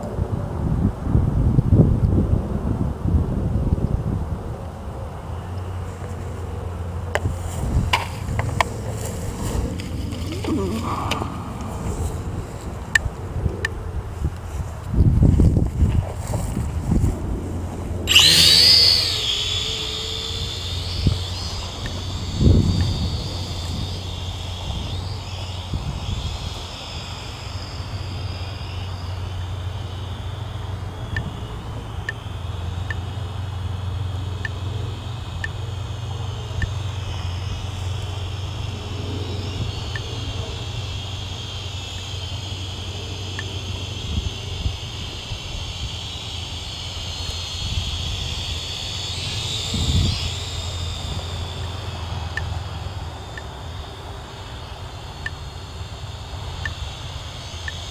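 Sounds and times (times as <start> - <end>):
quadcopter motors whining: 0.0 - 57.9.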